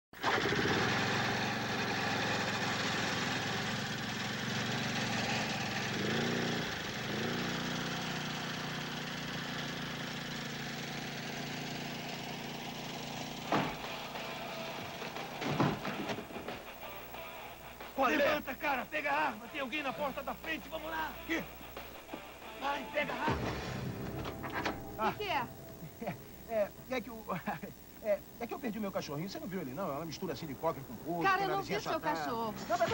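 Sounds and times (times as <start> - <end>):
small petrol engine running: 0.2 - 17.2, 22.6 - 32.9
film score music: 16.1 - 27.7.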